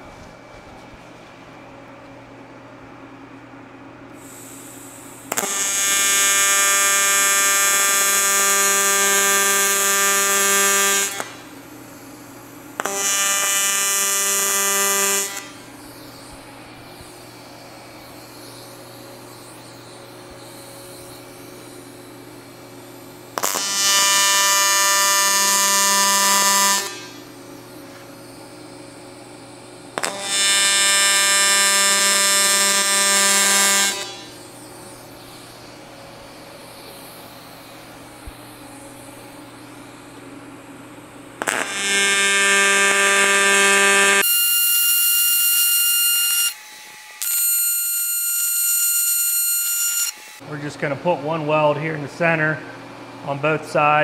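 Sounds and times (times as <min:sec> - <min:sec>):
welding arc buzzing: 0:04.1 - 0:50.7.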